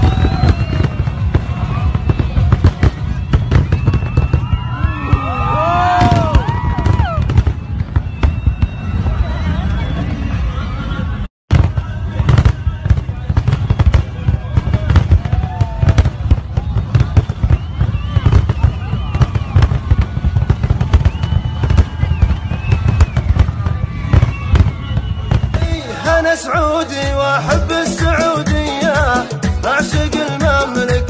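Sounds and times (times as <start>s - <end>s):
crowd voices: 0.0s - 31.0s
fireworks bangs and crackles: 0.0s - 31.0s.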